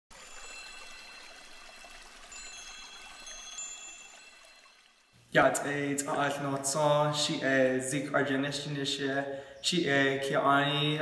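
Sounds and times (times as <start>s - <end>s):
soft chimes ringing: 0.1s - 6.5s.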